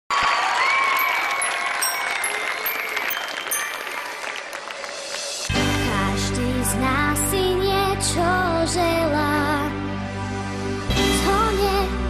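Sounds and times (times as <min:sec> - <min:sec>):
audience applauding: 0:00.1 - 0:05.9.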